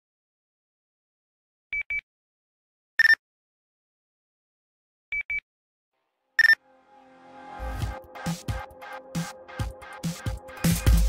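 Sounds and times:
short electronic beeps: 1.7s - 2.0s, 3.0s - 3.2s, 5.1s - 5.4s, 6.4s - 6.6s
faint electronic music: 6.4s - 11.0s.

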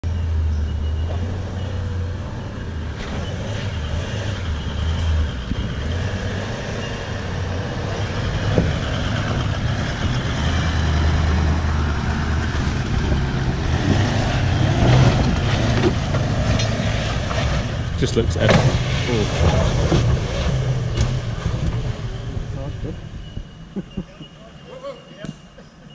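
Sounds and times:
engine low rumble: 0.0s - 25.9s.

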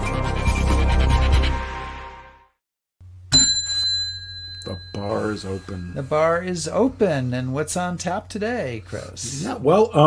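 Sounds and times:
bell ding: 3.3s - 6.7s.

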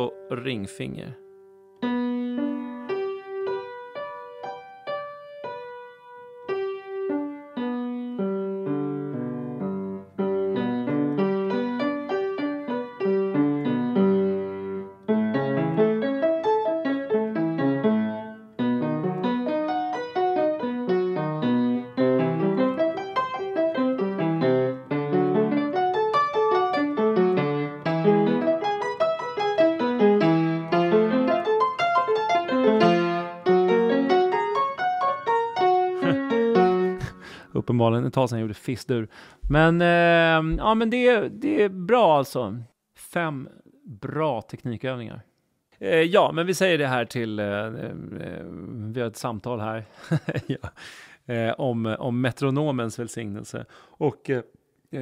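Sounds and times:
piano arpeggios: 1.3s - 37.4s.

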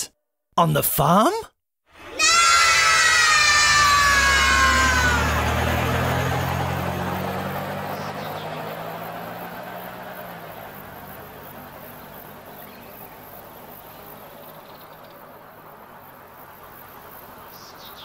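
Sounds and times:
high-pitched cartoon shout: 2.0s - 5.9s
cartoon car engine rumble: 2.2s - 18.0s.

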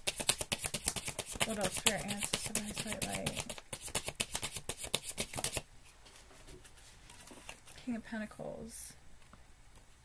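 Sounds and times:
cards being shuffled: 0.0s - 5.7s.

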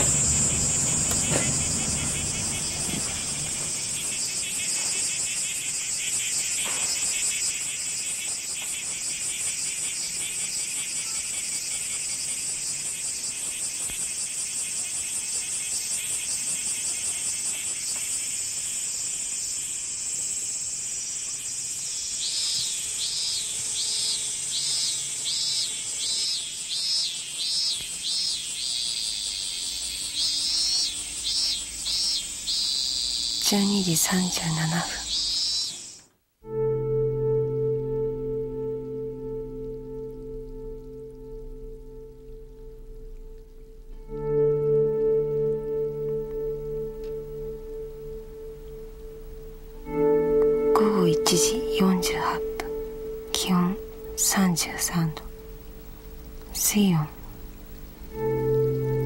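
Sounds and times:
cicadas chorus: 0.0s - 36.1s, 37.8s - 59.0s
cicada rhythmic pulsing call: 0.0s - 59.0s.

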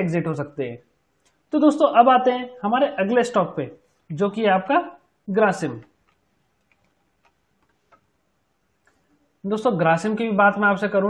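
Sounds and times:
computer keyboard keystrokes: 6.0s - 8.0s.

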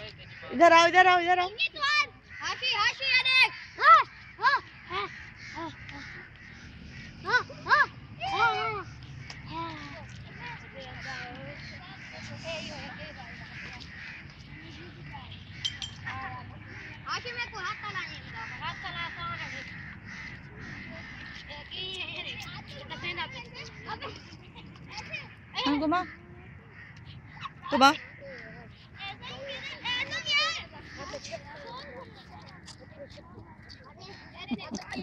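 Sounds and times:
children calling out and chattering: 0.0s - 35.0s
crow cawing: 1.8s - 31.9s.

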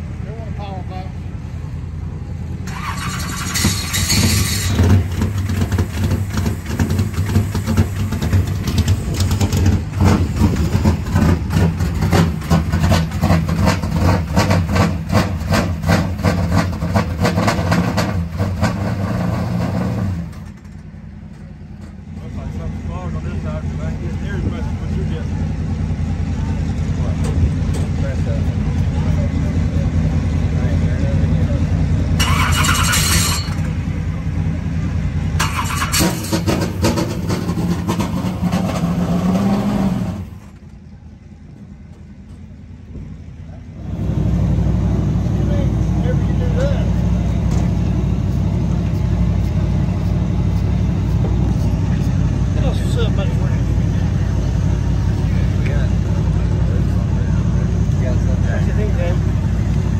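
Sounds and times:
engine running steadily: 0.0s - 59.9s
race car engine pulsing: 0.0s - 59.9s.

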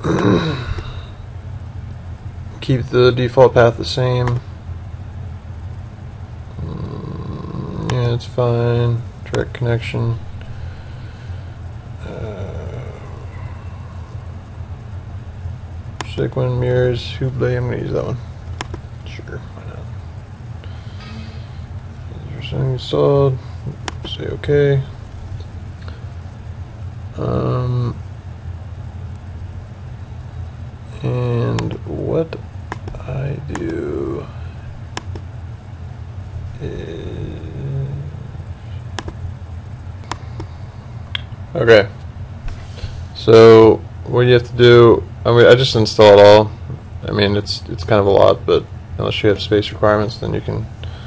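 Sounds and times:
low hum with faint hiss: 0.0s - 51.0s
computer mouse clicks: 18.5s - 18.8s, 32.7s - 33.7s, 35.0s - 35.2s, 39.0s - 39.2s.

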